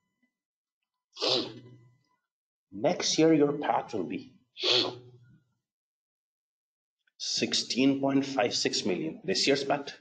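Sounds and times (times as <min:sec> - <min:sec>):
man sneezing: 0:01.2 - 0:01.6, 0:04.6 - 0:05.1.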